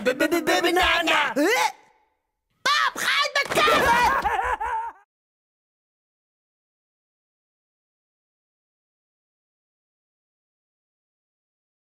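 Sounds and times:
man's cartoon-style voice: 0:00.0 - 0:01.9, 0:02.7 - 0:05.0.

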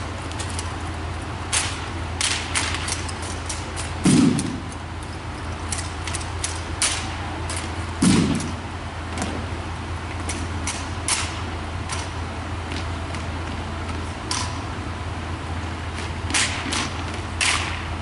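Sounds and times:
low hum: 0:00.0 - 0:18.0
sharp crack: 0:01.5 - 0:04.7, 0:05.7 - 0:08.6, 0:10.2 - 0:12.1, 0:16.3 - 0:17.9.

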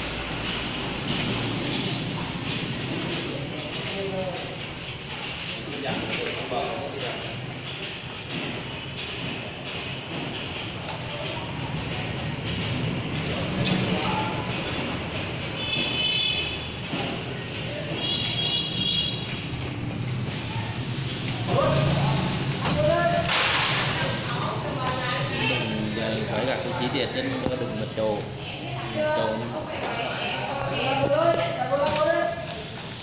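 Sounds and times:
knocks and clatter: 0:00.0 - 0:24.6.

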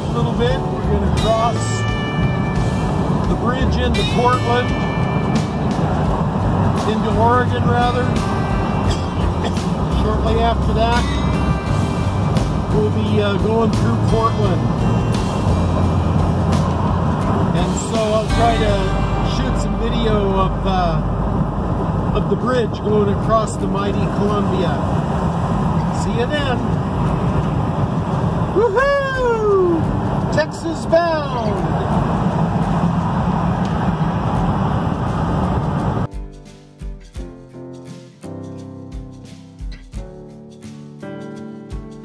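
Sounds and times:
music playing: 0:00.0 - 0:42.0
vehicle engine and road noise: 0:00.0 - 0:42.0.

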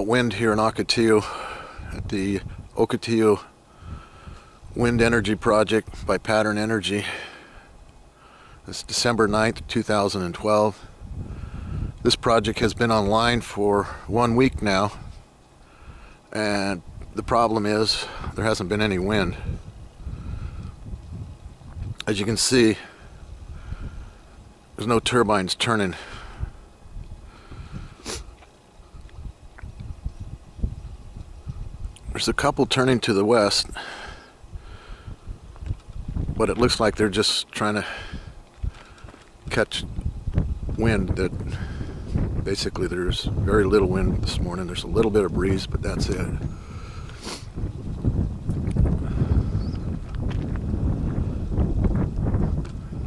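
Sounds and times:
wind buffeting microphone: 0:00.0 - 0:06.8, 0:07.6 - 0:16.2, 0:16.8 - 0:25.1, 0:26.0 - 0:32.8, 0:33.4 - 0:37.2, 0:37.8 - 0:53.0.

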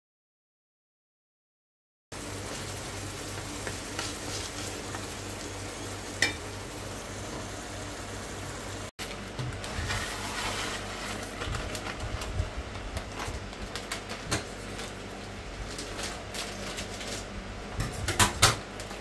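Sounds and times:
meat sizzling in a frying pan: 0:02.2 - 0:08.9
spatula scraping pan: 0:09.6 - 0:11.4.

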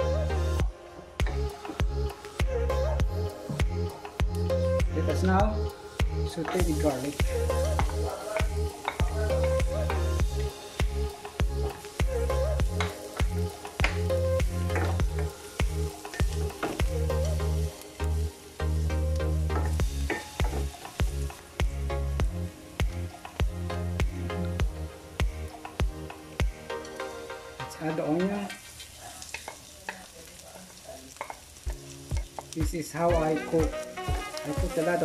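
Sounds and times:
background music with bass: 0:00.0 - 0:28.0, 0:31.7 - 0:35.0
garlic sizzling in oil: 0:05.1 - 0:35.0
spatula stirring in pan: 0:06.4 - 0:17.9, 0:19.5 - 0:21.4, 0:28.3 - 0:35.0.

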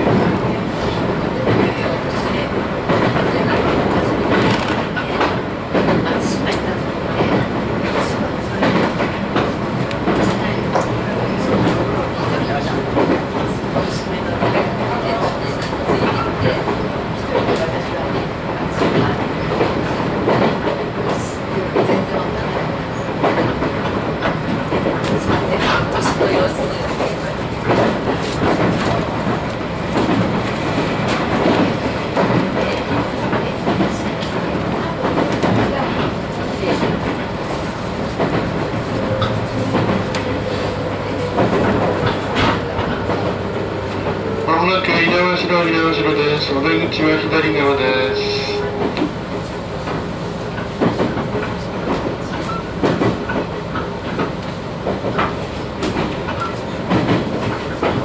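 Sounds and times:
train wheels rumbling on rail: 0:00.0 - 0:58.0.

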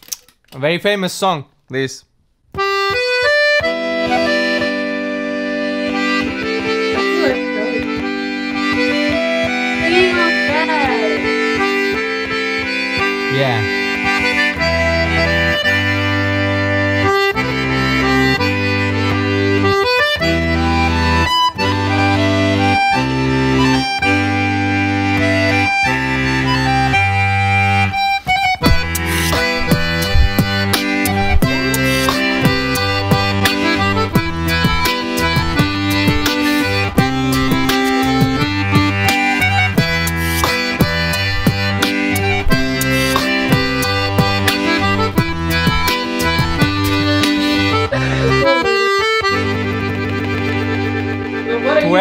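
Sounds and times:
button accordion playing a song: 0:02.5 - 0:52.0
sharp percussive clicks: 0:49.3 - 0:51.0.

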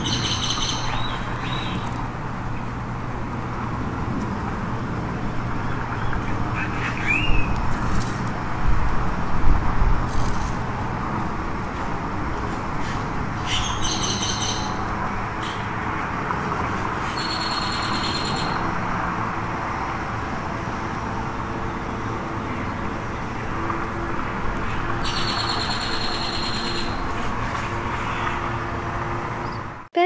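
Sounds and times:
outdoor background hum: 0:00.0 - 0:30.0
bird high trill: 0:17.2 - 0:18.6, 0:25.0 - 0:27.0.

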